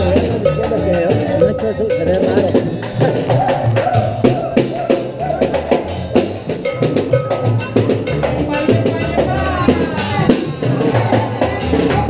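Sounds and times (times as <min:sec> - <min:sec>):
band playing dance tune: 0:00.0 - 0:12.0
sharp percussion hits: 0:00.0 - 0:12.0.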